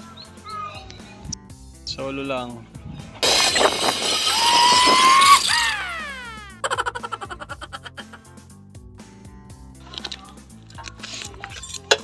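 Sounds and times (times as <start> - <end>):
zipline trolley whining on cable: 3.7 - 6.4.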